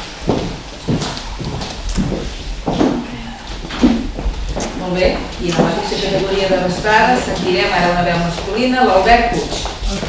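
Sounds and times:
footsteps on stage floor: 0.0 - 10.0.

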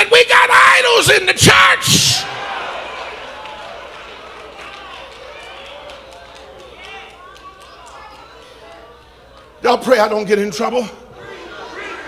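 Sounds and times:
congregation calling out: 0.0 - 3.4.

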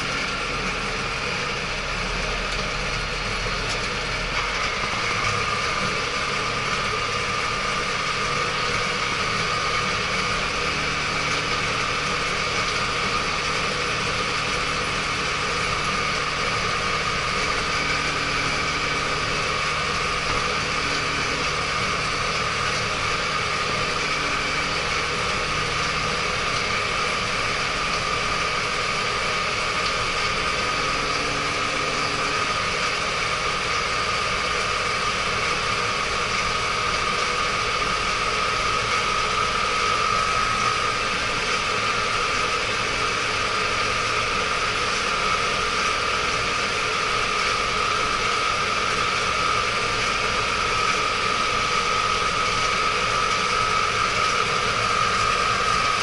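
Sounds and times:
tractor diesel engine running: 0.0 - 56.0
high whine: 3.3 - 56.0.

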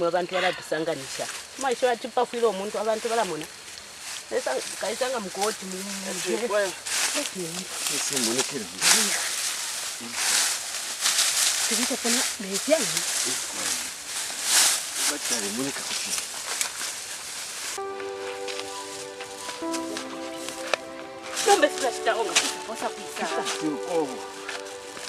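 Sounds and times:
bushes and dry grass rustling: 0.0 - 25.0.

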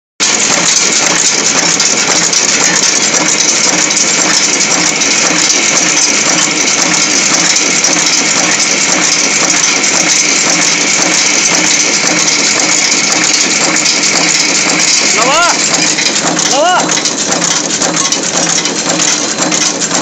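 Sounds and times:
heading machine metallic clatter: 0.2 - 20.0.

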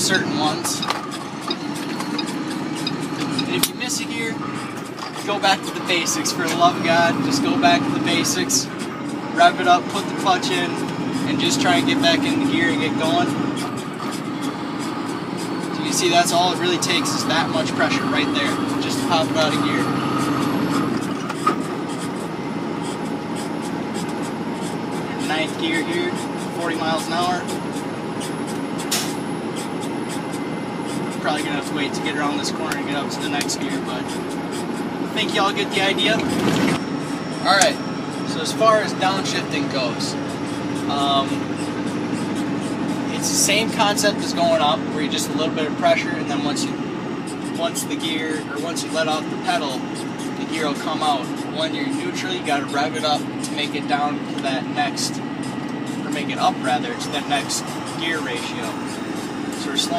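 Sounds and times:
road noise: 0.0 - 59.9
truck diesel engine running: 0.0 - 59.9
sharp click: 28.5 - 29.2.

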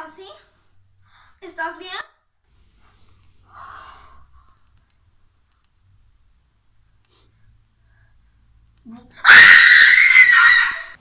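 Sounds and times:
woman screaming: 9.2 - 11.0.

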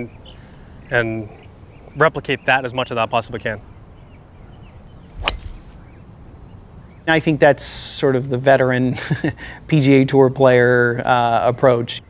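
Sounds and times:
golf ball impact crack: 5.1 - 6.0
golf club swish: 5.1 - 6.0.

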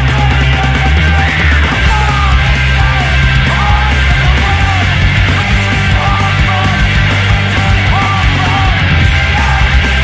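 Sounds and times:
person yelling vocals: 0.0 - 9.8
punk band playing: 0.0 - 10.0.

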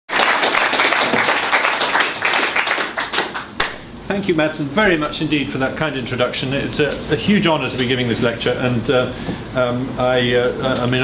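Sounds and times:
audience applauding: 0.1 - 3.8.

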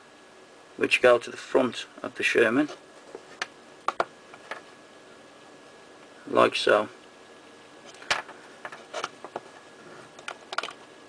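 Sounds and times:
plastic parts clicking: 10.2 - 10.8.

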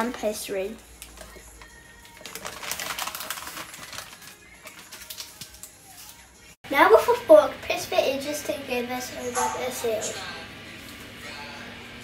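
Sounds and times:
baking paper crinkling: 0.9 - 6.5.

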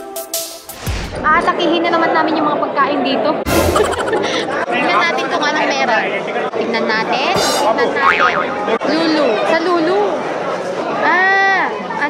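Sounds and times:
crowd chatter: 1.2 - 12.0.

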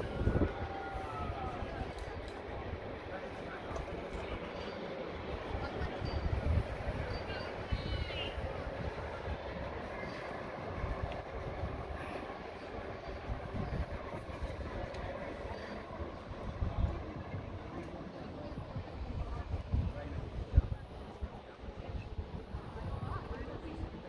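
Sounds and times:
wind gusting on microphone: 0.0 - 4.3, 5.2 - 17.7, 18.4 - 24.0
people's voices: 0.0 - 24.0.

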